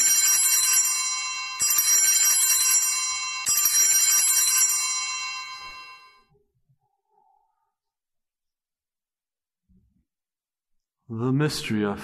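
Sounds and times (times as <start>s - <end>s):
small handbells ringing: 0.0s - 6.2s.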